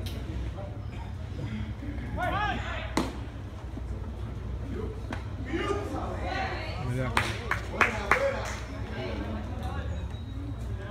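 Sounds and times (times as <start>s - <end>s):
general chatter: 0.0s - 10.9s.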